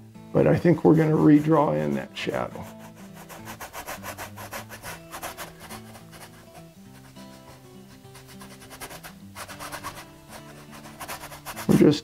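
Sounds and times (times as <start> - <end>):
paintbrush scrubbing canvas: 1.0 - 11.9.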